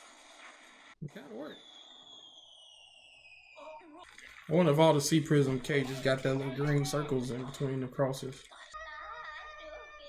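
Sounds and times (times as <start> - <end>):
high falling whistling tone: 1.3 - 4.0.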